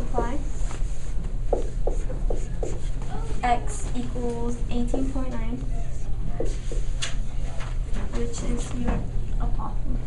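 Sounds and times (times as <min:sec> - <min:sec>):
steady low hum: 0:00.0 - 0:10.0
marker squeaking on whiteboard: 0:01.5 - 0:03.2.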